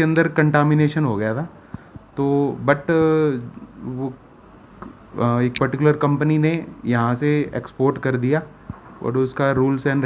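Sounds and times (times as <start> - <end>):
man speaking: 2.2 - 4.2, 5.2 - 10.0.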